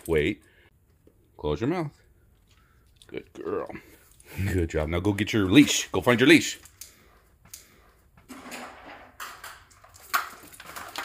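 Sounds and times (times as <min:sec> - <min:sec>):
dog claws clicking on wooden floor: 0:09.7 - 0:11.0.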